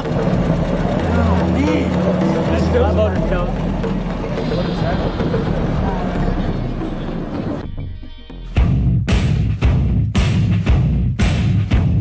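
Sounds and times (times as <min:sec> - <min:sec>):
indistinct voices: 0:00.0 - 0:07.6.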